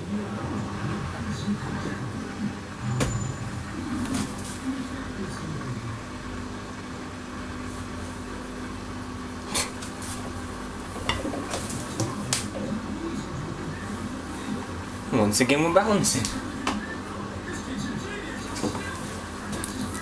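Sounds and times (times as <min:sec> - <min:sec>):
washing machine motor hum: 0:00.0 - 0:20.0.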